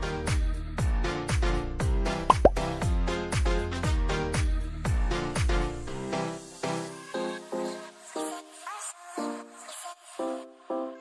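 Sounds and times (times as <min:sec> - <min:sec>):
upbeat music with kick drum: 0:00.3 - 0:05.7
quick pitch-sliding pops: 0:02.3 - 0:02.6.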